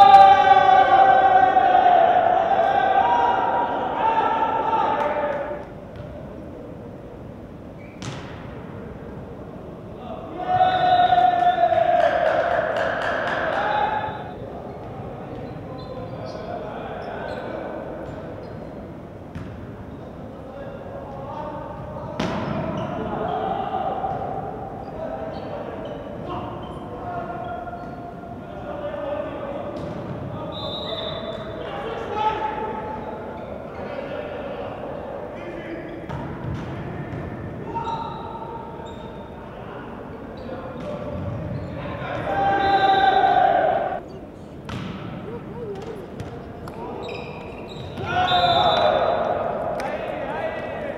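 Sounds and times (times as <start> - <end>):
players shouting: 0.0 - 5.7, 10.0 - 14.8, 22.2 - 33.2, 40.8 - 44.0, 44.8 - 50.9
sneakers squeaking on floor: 7.7 - 8.5, 14.0 - 20.2, 22.2 - 23.5, 24.8 - 28.2, 35.7 - 39.4, 40.2 - 43.2, 44.0 - 50.2
voices calling out: 44.8 - 50.9.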